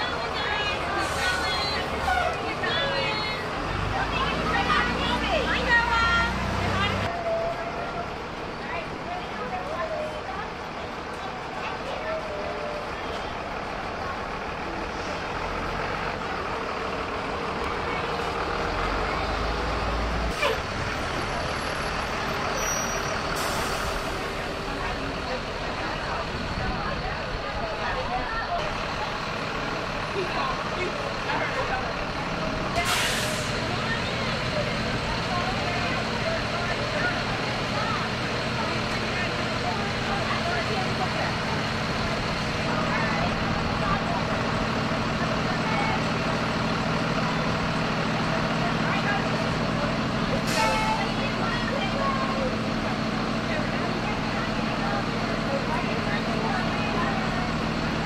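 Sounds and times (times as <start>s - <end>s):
buses idling: 0.0s - 58.0s
voices: 0.0s - 58.0s
air brakes hissing: 0.9s - 2.2s, 22.5s - 24.4s, 32.7s - 33.8s, 50.3s - 51.2s.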